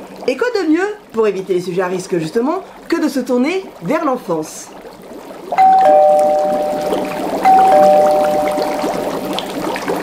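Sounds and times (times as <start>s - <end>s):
dry ice bubbling: 3.2s - 10.0s
two-tone doorbell chime: 5.6s - 9.3s.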